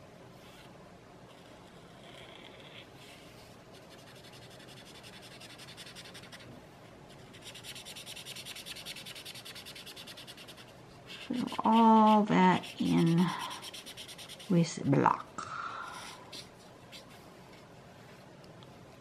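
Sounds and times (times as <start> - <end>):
pen tip rubbing over paper: 7.3 - 14.6.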